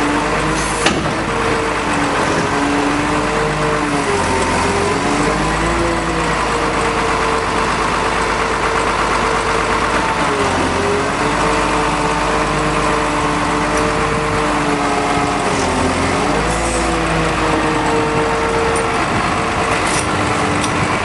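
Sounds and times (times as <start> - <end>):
crane engine running: 0.0 - 21.0.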